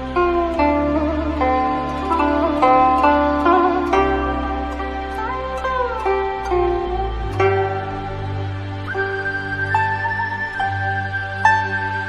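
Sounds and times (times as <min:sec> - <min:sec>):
plucked-string melody: 0:00.0 - 0:12.0.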